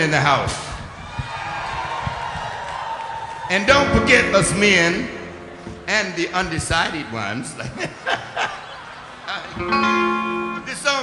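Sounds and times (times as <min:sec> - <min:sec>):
guitar chord ringing: 0:03.7 - 0:06.5, 0:09.6 - 0:11.0.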